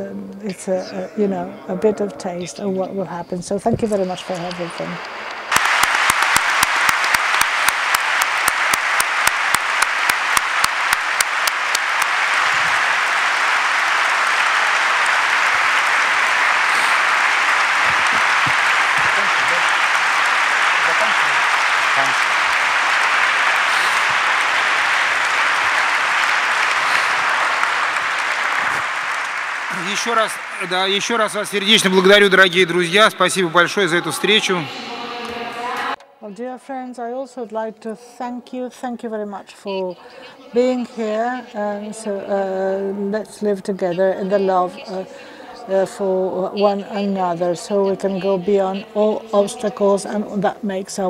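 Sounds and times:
audience applauding: 3.9 - 36.0
quick claps close to microphone: 4.4 - 31.6.

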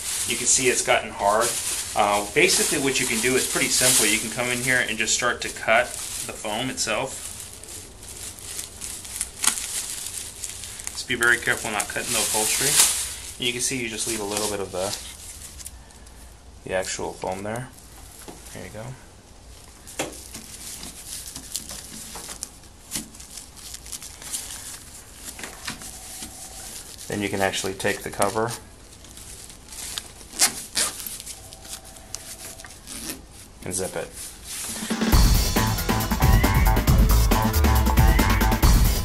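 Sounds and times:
plastic bag crinkling: 0.0 - 35.3.

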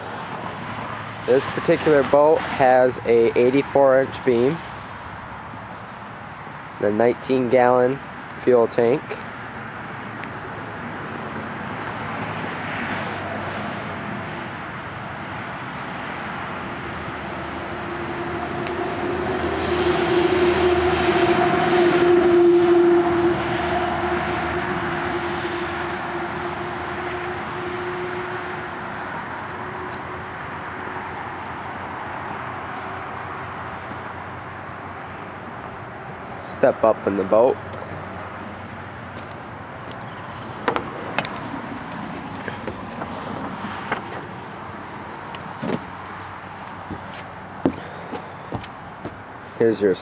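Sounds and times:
vehicle passing by: 9.1 - 50.0.

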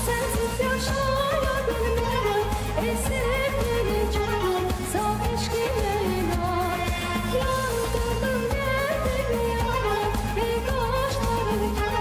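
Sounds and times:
girl singing into microphone: 0.0 - 12.0
instrumental backing with bass: 0.0 - 12.0.

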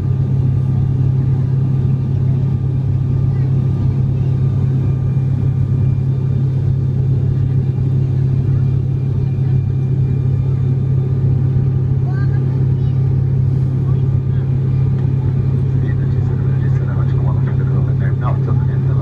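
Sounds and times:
airliner cabin drone: 0.0 - 19.0
faint voices: 0.5 - 19.0.

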